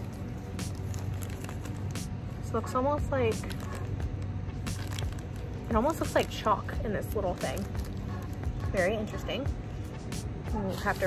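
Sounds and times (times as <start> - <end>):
plastic bag crinkling: 0.0 - 2.4, 3.4 - 8.8, 10.6 - 11.0
steady low hum: 0.0 - 11.0.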